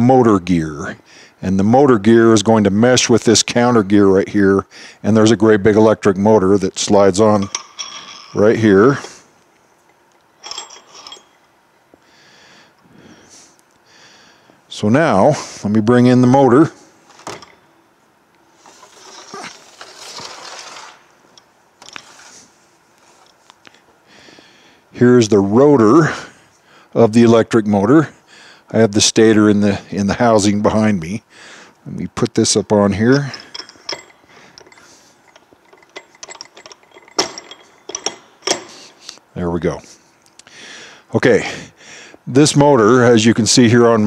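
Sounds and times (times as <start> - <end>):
metal clicks and clanks: 7.3 - 8.5, 33.1 - 39.2
handling rustling: 33.2 - 39.2.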